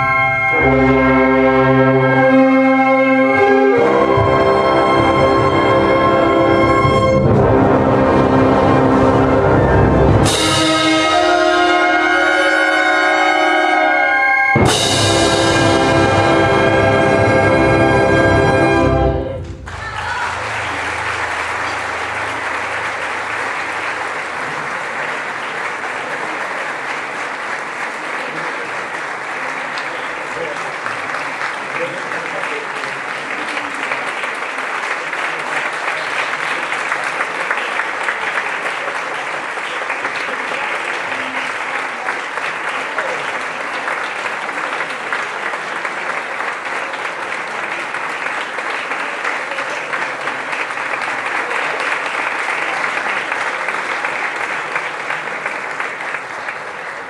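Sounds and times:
audience applauding: 14.5 - 57.0.

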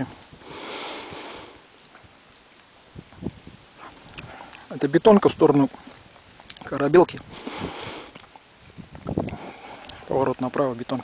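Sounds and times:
breath through the nose: 0.1 - 1.7, 3.8 - 4.7, 7.3 - 8.3, 9.2 - 10.1.

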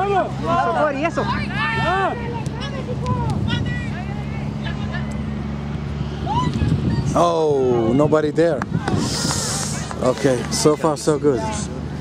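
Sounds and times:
people shouting: 0.4 - 5.0, 6.1 - 8.1.

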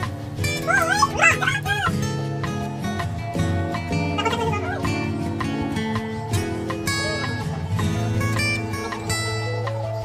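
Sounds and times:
background music with steady beat: 0.0 - 10.0
high wavering yelping calls: 0.5 - 2.1, 3.9 - 5.1.

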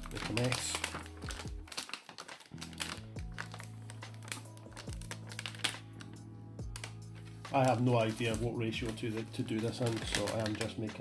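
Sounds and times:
powder pouring into paper cup: 0.0 - 5.8, 7.6 - 11.0
background music with held notes: 0.0 - 11.0
plastic bag crinkling: 0.0 - 11.0.

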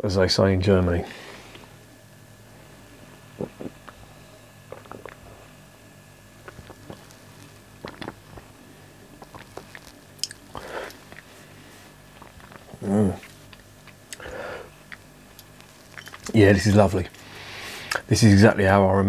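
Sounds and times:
man swallowing gulps: 3.2 - 5.6, 6.4 - 11.3, 11.9 - 15.1.

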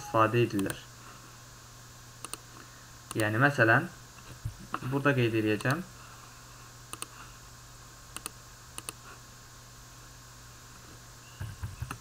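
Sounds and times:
faint steady hum: 0.0 - 12.0
computer mouse clicking: 2.2 - 2.4, 6.9 - 7.1, 8.2 - 9.0.

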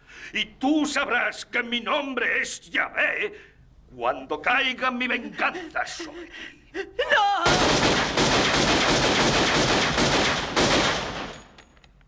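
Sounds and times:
rapid pistol gunfire: 7.5 - 11.5.

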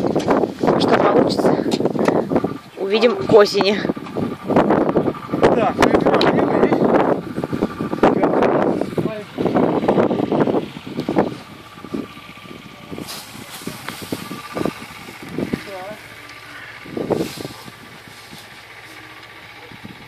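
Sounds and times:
straw rustling and crackling: 10.9 - 19.6.

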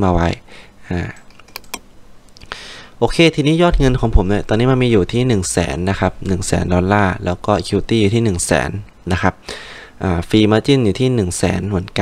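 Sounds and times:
computer keys clicking: 1.2 - 1.9.

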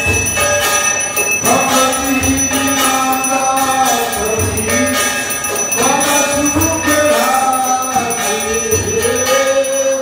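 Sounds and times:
devotional music: 0.0 - 10.0
hand bell ringing: 0.0 - 10.0.

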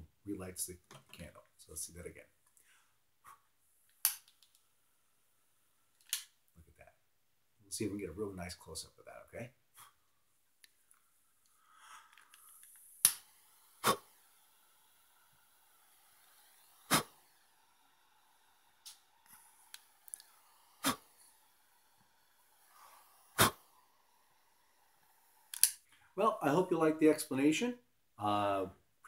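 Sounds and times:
faint steady hiss: 0.0 - 29.0
sharp loud clicks: 25.5 - 25.8.

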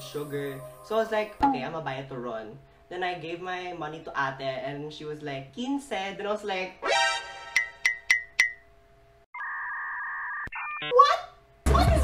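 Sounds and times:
bright pings: 7.6 - 8.7.

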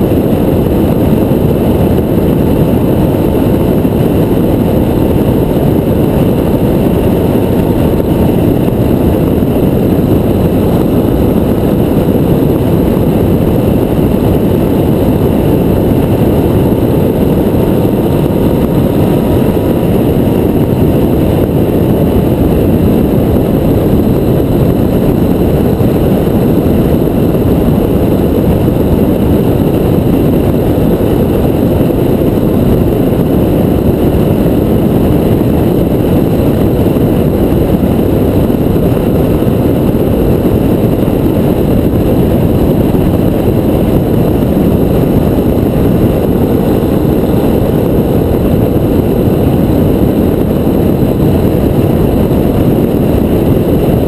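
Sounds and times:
motorcycle engine and road noise: 0.0 - 54.0
wind rush on microphone: 0.0 - 54.0.

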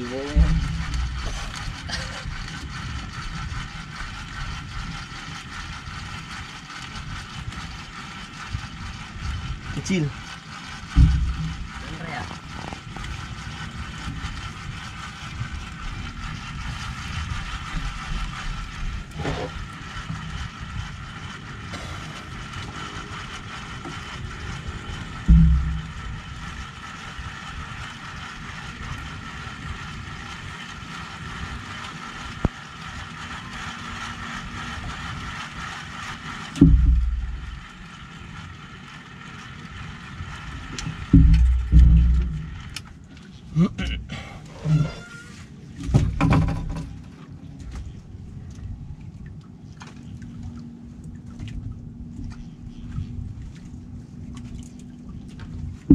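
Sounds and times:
boat motor humming: 0.0 - 55.9
wind rumbling on microphone: 0.0 - 55.9
loud low thumps: 0.4 - 1.6, 10.9 - 11.8, 25.1 - 26.6, 36.6 - 37.7, 41.1 - 42.8.

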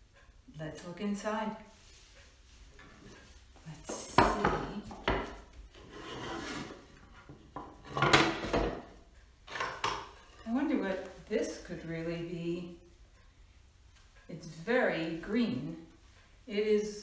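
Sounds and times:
wooden lid rubbing: 3.9 - 8.5
wooden box scraping on floor: 5.7 - 8.8.

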